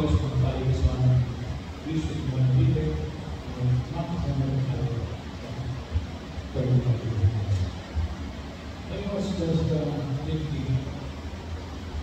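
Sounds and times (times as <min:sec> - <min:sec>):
man talking in low voice: 0:00.0 - 0:05.9, 0:06.5 - 0:07.8, 0:08.8 - 0:11.1.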